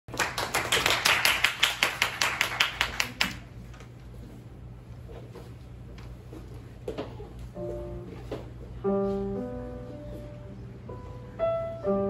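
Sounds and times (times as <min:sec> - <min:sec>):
hands clapping: 0:00.1 - 0:03.5.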